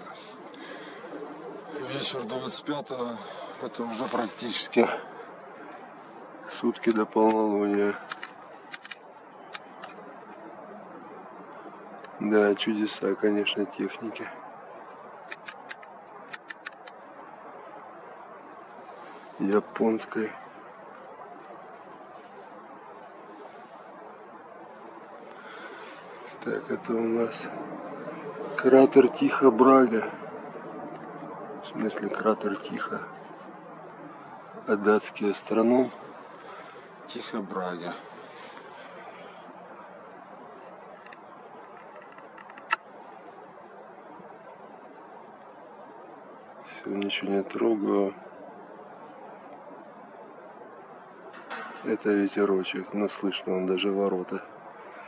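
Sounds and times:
faint steady hiss: 0:00.0 - 0:55.0
sharp camera click: 0:15.3 - 0:17.0.

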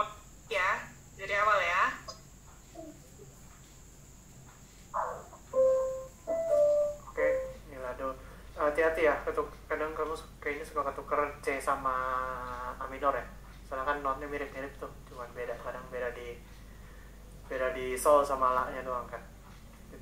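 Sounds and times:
piano notes: 0:05.1 - 0:07.7.

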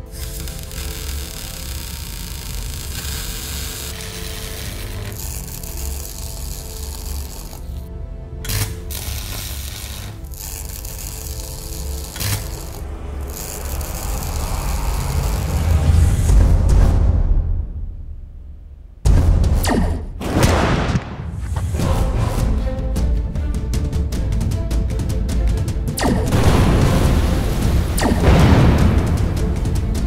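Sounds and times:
machine-like sound effect: 0:00.0 - 0:07.9, 0:08.5 - 0:16.9, 0:27.9 - 0:29.4
dramatic soundtrack music: 0:00.0 - 0:30.0
deep rumble: 0:12.8 - 0:19.7, 0:26.1 - 0:30.0
sharp hits: 0:26.0 - 0:30.0.

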